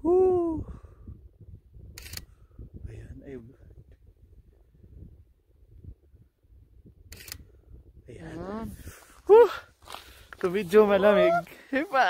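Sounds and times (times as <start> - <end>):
low wind rumble: 0.0 - 12.0
camera shutter click: 7.1 - 7.4.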